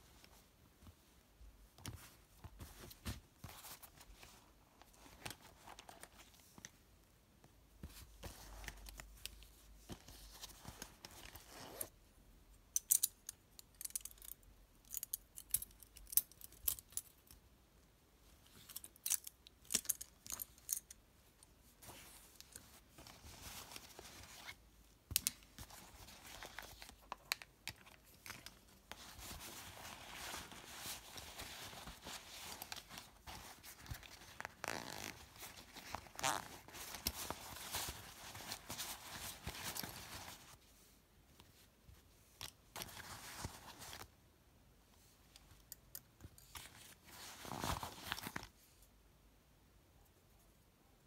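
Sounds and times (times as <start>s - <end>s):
zipper being pulled: 34.6s - 35.2s, 35.9s - 36.6s.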